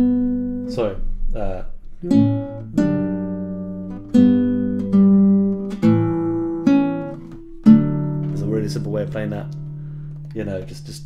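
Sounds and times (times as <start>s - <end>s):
classical guitar plucked chords: 0.0s - 11.0s.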